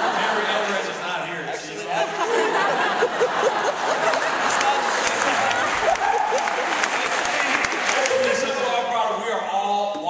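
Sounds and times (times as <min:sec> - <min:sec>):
laughter: 0:00.0 - 0:07.1
audience applause: 0:02.3 - 0:08.8.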